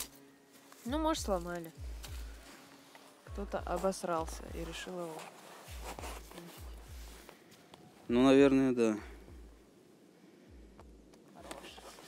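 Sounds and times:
footsteps on dry grass: 0.0 - 7.3
soft low thumps: 3.3 - 4.9.

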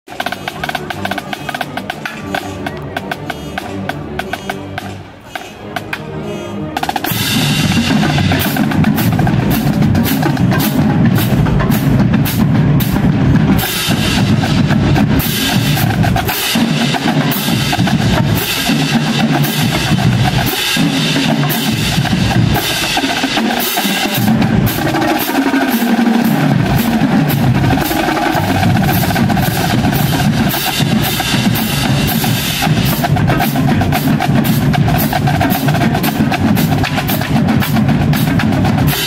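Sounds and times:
marching drumline: 0.1 - 6.1, 6.8 - 39.0.

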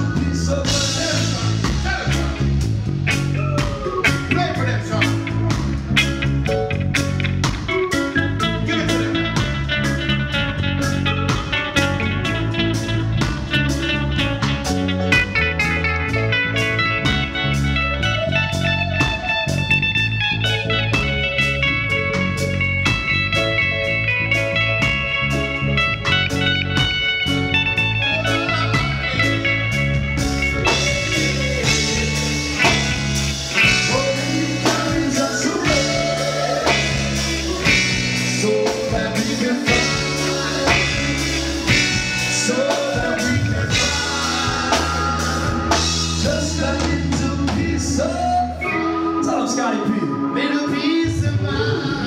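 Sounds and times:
electric guitar lead lines: 0.0 - 52.0
reggae band playing: 0.0 - 52.0.

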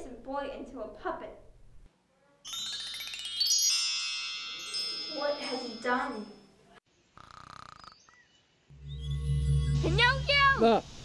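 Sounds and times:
faint snore: 7.2 - 8.0.

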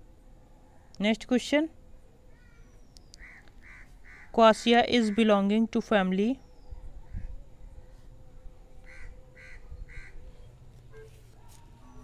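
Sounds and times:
faint steady hum: 0.0 - 12.0
bird calling: 2.3 - 5.4, 8.8 - 12.0.

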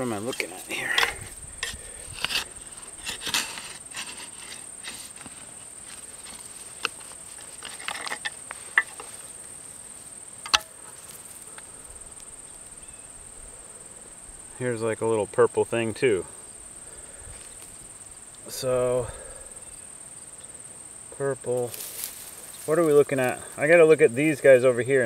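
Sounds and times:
garden fork scraping soil: 0.0 - 9.5
insects droning: 0.0 - 25.0.

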